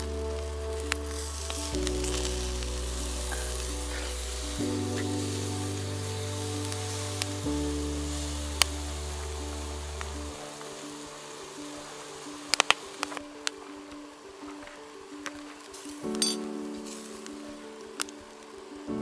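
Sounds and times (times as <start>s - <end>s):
steak sizzling on a grill: 0.0s - 13.5s, 15.6s - 18.1s
slow background music chords: 0.0s - 19.0s.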